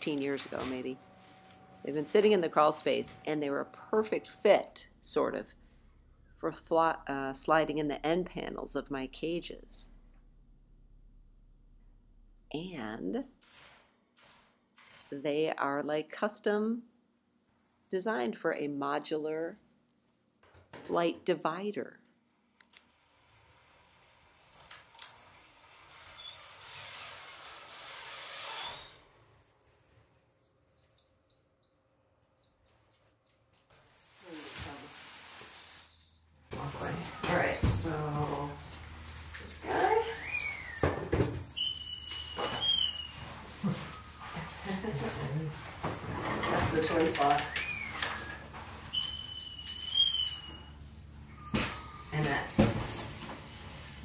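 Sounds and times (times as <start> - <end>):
finches chirping: 0.6 - 4.7, 32.4 - 38.8, 39.4 - 43.2, 43.8 - 48.1, 48.9 - 50.7
high wavering bird calls: 1.0 - 2.0, 39.5 - 46.7, 47.4 - 52.2.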